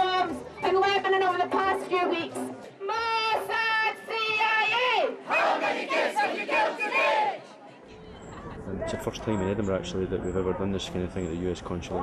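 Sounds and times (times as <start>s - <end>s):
protesters chanting: 5.0s - 7.6s.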